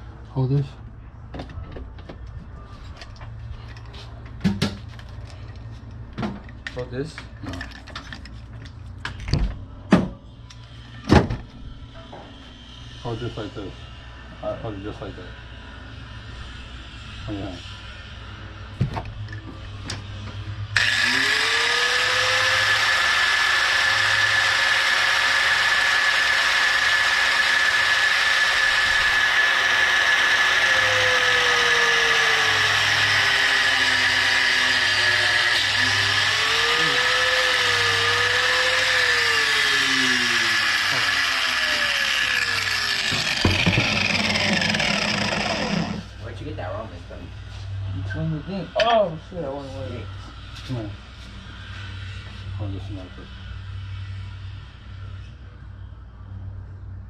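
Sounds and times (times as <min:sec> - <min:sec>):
angle grinder grinding tube: 0:20.8 - 0:46.2.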